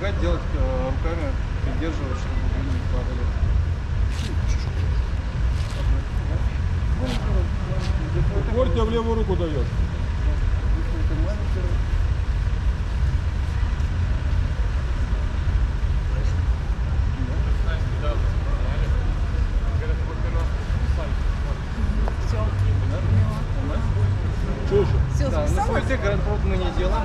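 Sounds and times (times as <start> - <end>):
faint voices: 0.0 - 27.0
low rumble of city noise: 0.0 - 27.0.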